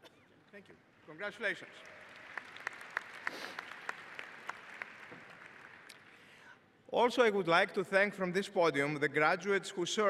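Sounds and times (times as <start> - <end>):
audience applauding: 1.4 - 6.3.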